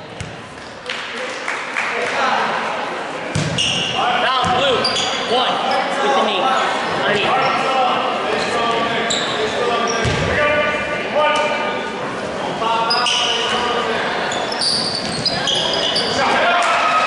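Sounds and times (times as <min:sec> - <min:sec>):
shouts and chatter echoing: 0:00.0 - 0:17.0.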